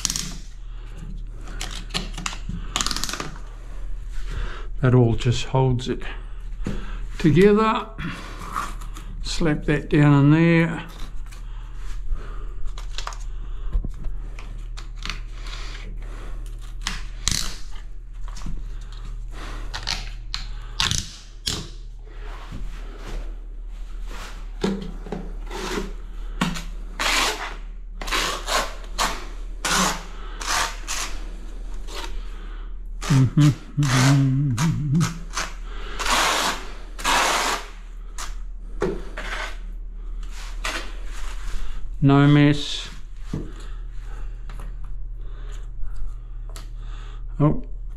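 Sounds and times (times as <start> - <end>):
steady low hum: 0.0 - 47.9
trowel scraping adhesive: 25.4 - 26.0, 27.0 - 31.2, 33.0 - 38.3.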